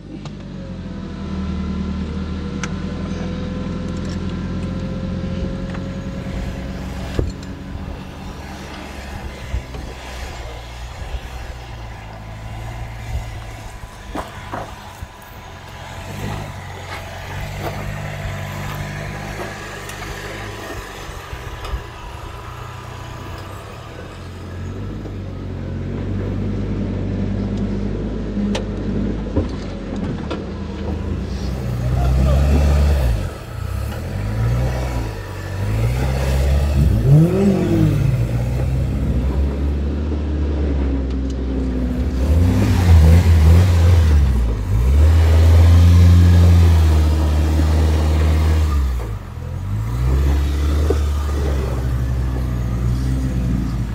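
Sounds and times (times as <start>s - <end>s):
engine revving: 0.0s - 53.9s.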